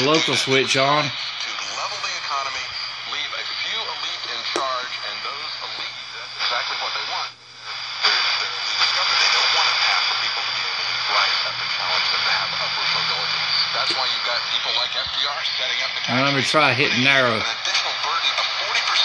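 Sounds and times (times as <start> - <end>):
faint man's voice on radio: 0.0 - 19.0
radio static hiss: 0.0 - 19.0
steady radio whistles: 0.0 - 19.0.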